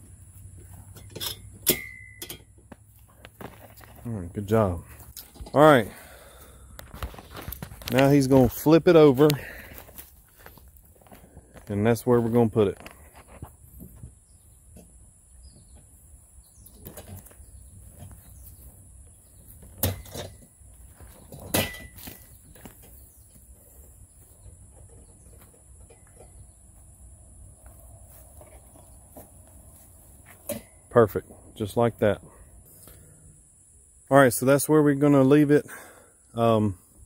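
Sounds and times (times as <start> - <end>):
soft scuffs and clicks: 27.6 - 30.5.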